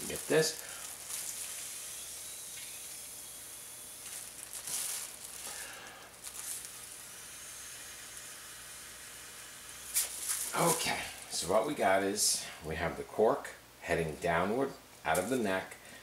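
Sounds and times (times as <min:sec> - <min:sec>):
breath blowing into plastic bag: 0:00.0 - 0:01.8, 0:04.1 - 0:06.8.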